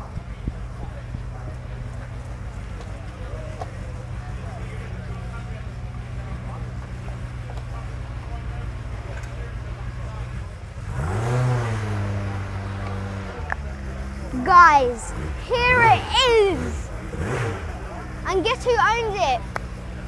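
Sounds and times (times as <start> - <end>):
car engine idling and revving: 0.0 - 20.0.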